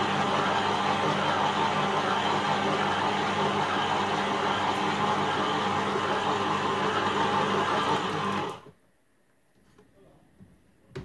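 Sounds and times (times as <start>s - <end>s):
stand mixer motor whirring: 0.0s - 8.7s.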